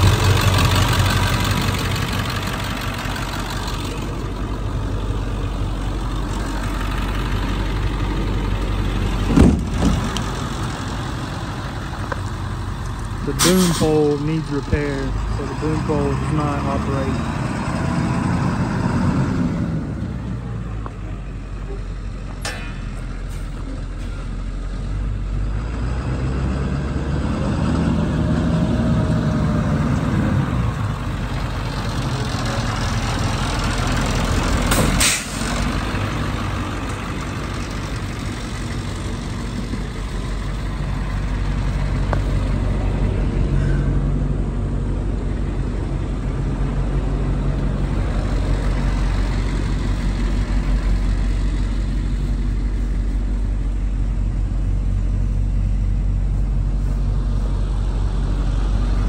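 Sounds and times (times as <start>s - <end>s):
truck engine idling: 0.0s - 26.0s, 26.6s - 59.0s.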